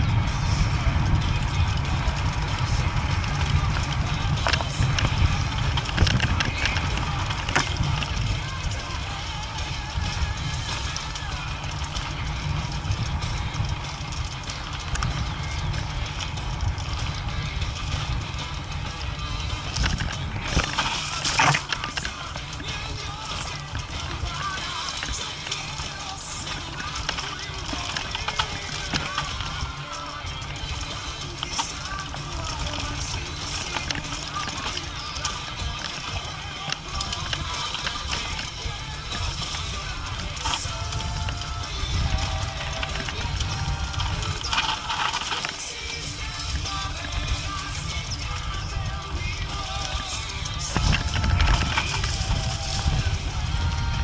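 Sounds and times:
background music: 0:00.0 - 0:54.0
bike jolt: 0:00.0 - 0:54.0
mountain bike rumbling and rattling: 0:00.0 - 0:54.0.

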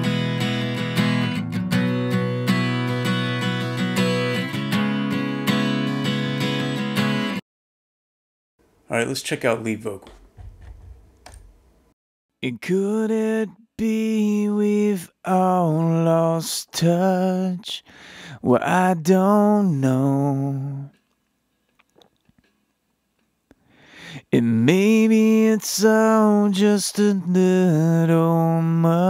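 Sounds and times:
singer inhaling softly: 0:17.9 - 0:18.4, 0:23.6 - 0:24.3
faint mouth clicks: 0:21.7 - 0:22.4.

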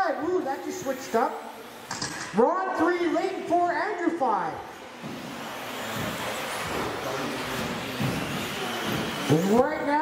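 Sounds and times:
rc car motors and tyres hissing: 0:05.4 - 0:09.6.

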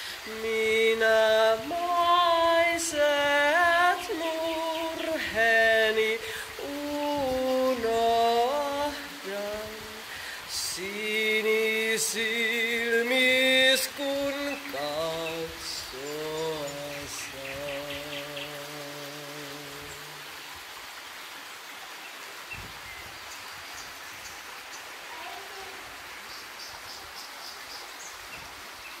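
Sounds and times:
stream rippling over stones: 0:00.0 - 0:29.0.

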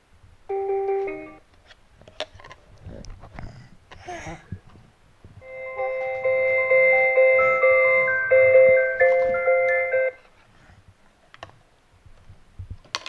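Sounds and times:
chime-like electronic tune: 0:05.4 - 0:10.2.

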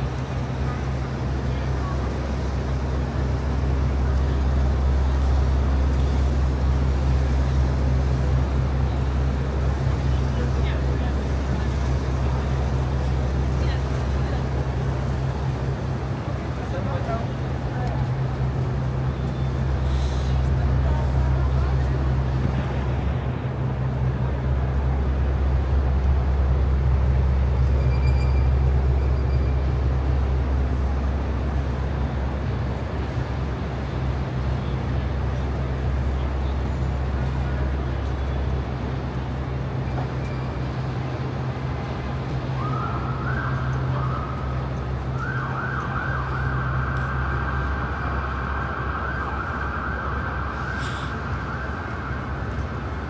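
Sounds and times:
street noise: 0:00.0 - 0:53.0
traffic rumble: 0:00.0 - 0:53.0.

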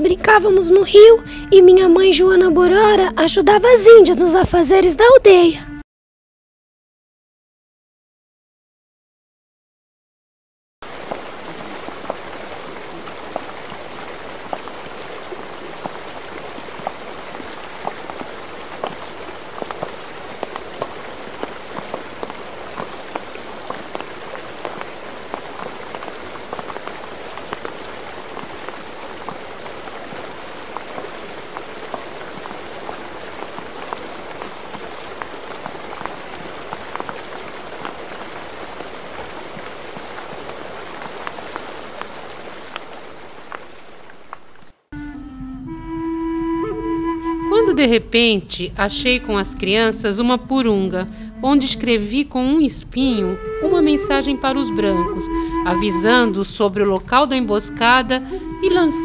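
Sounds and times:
raindrop clicks: 0:10.8 - 0:44.8
rain hissing: 0:10.8 - 0:44.9, 0:46.6 - 0:59.0.

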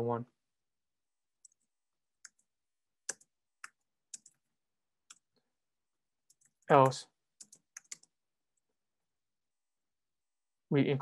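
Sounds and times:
computer keyboard keystrokes: 0:02.2 - 0:04.4, 0:06.3 - 0:08.1.

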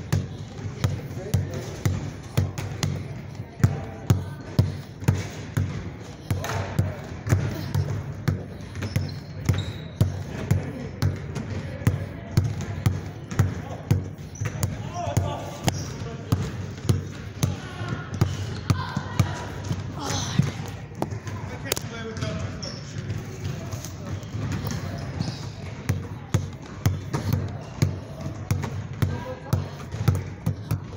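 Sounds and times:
basketball bouncing: 0:00.0 - 0:30.9.

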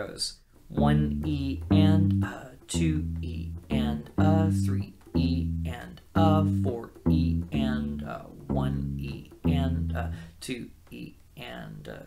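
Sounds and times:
bass ukulele funk riff: 0:00.7 - 0:11.1.

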